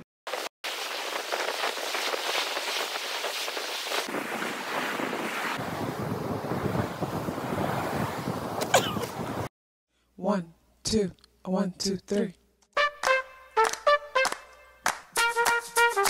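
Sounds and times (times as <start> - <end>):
ocean surf washing on beach: 0.7 - 9.5
wind buffeting microphone: 3.9 - 9.5.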